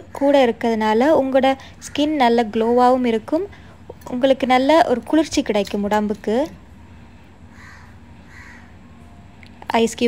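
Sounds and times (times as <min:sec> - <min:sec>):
faint crow caw: 0:07.5 - 0:08.8.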